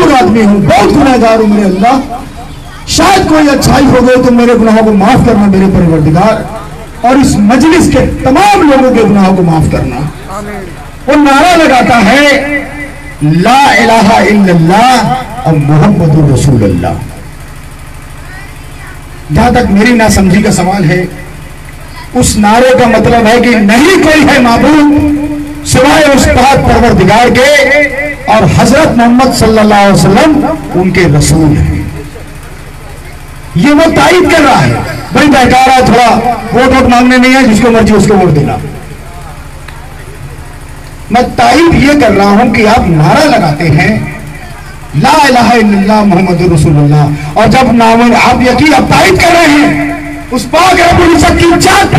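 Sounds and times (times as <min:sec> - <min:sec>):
amplified speech: 0:00.0 - 0:51.9
low mechanical hum with rapid throb: 0:00.0 - 0:51.9.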